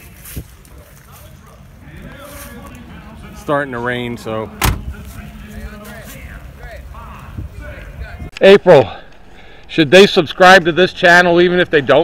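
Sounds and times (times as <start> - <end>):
faint background voices talking: 0.0 - 9.4.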